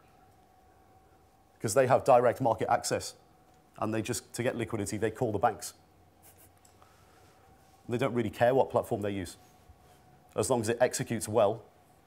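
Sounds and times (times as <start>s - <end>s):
faint steady hum: 0.0s - 12.0s
man speaking: 1.6s - 3.2s, 3.8s - 5.8s, 7.9s - 9.4s, 10.4s - 11.7s.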